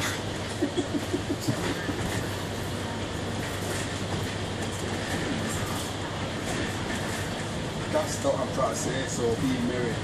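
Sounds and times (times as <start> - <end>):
bus engine noise: 0.0 - 10.0.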